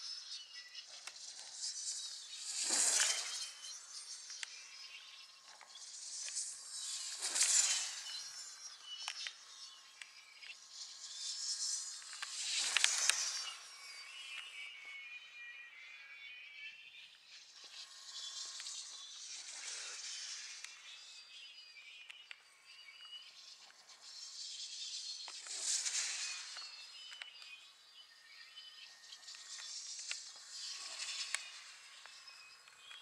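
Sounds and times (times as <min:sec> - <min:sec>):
faint high chirping: 0:00.0 - 0:33.0
gliders whooshing past: 0:01.8 - 0:03.6, 0:06.4 - 0:08.1.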